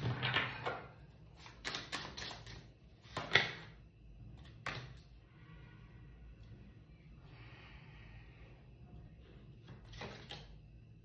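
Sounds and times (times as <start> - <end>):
cards clicking and tapping: 1.4 - 3.7.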